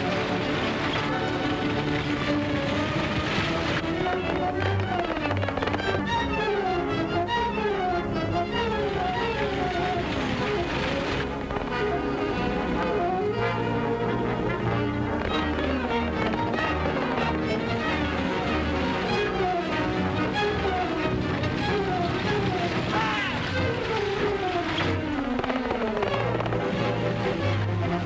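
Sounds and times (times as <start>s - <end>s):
orchestral chase music with brass: 0.0s - 28.0s.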